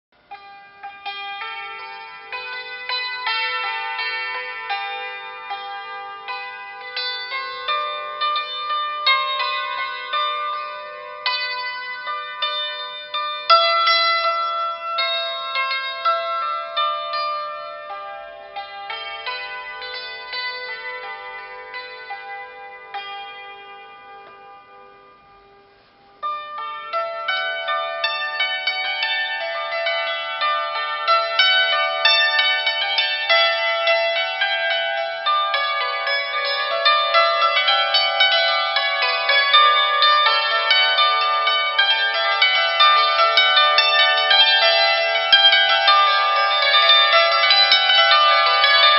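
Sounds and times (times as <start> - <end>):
hammered dulcimer notes: 0.2 - 48.9.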